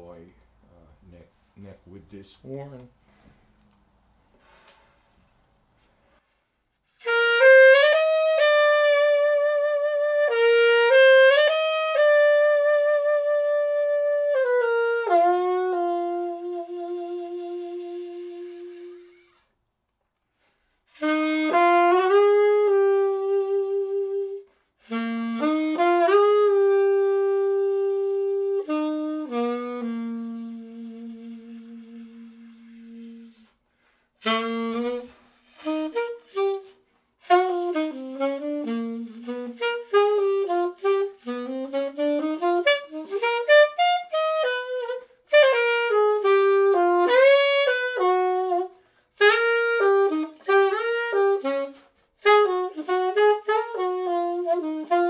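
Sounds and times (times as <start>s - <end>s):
solo saxophone with vibrato: 6.2s - 19.6s, 20.4s - 55.0s.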